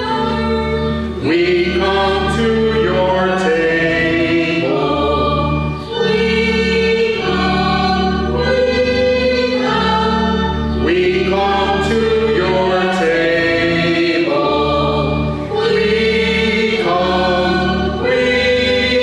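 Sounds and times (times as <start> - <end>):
choir singing a hymn: 0.0 - 19.0.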